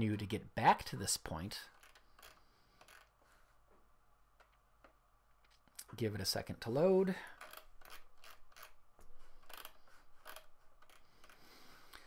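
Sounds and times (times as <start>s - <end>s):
low steady hum: 0.0s - 12.0s
faint irregular clicks: 1.7s - 5.9s, 7.4s - 12.0s.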